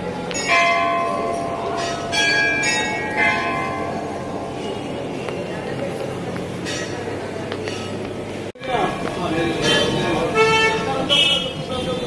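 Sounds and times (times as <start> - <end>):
metal temple bells ringing: 0.0 - 5.7.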